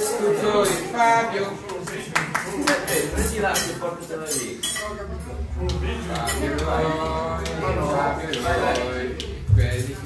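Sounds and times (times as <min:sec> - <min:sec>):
background chatter: 0:00.0 - 0:10.0
crockery and cutlery clinking: 0:02.7 - 0:06.7.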